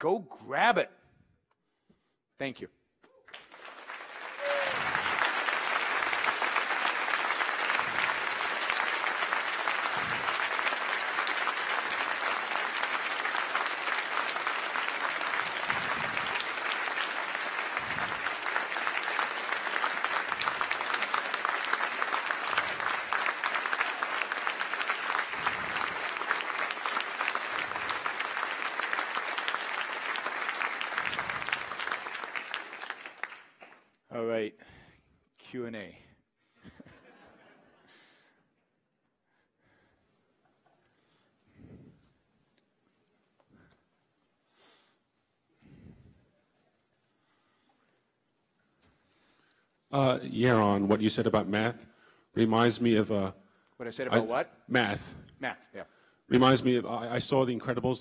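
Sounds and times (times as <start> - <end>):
large audience applauding: 3.2 - 34.0.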